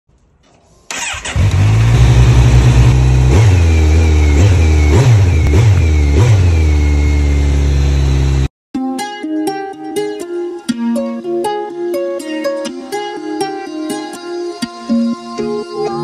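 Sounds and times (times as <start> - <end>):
motorcycle engine idling: 0.9 - 8.5
motorcycle throttle blips: 0.9 - 8.5.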